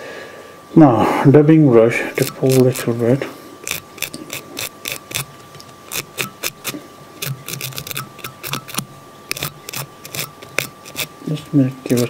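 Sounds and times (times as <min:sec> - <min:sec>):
brush scratching: 0:02.2 - 0:12.0.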